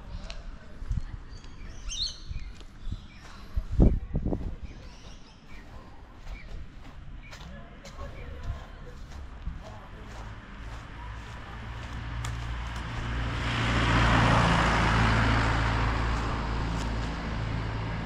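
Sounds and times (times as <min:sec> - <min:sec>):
vehicle driving by: 0:10.0 - 0:18.0.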